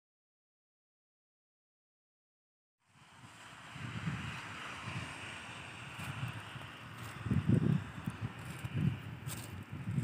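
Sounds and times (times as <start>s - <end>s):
wind buffeting microphone: 3.0s - 10.0s.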